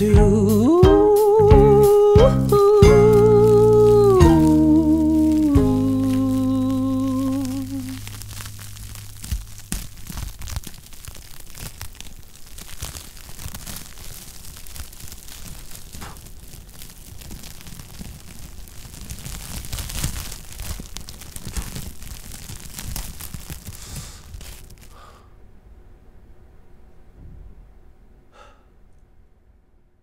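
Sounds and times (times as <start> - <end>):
held music chord: 0.0 - 8.0
sparkler crackling: 0.0 - 25.2.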